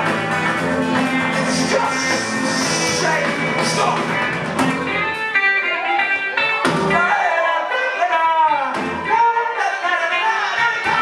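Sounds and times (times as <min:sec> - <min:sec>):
electric guitar notes ringing: 0:00.0 - 0:08.0
live band playing: 0:00.0 - 0:11.0.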